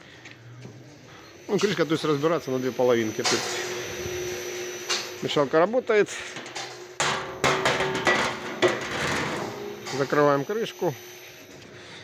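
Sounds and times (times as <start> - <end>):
stirrer motor humming: 1.3 - 11.6.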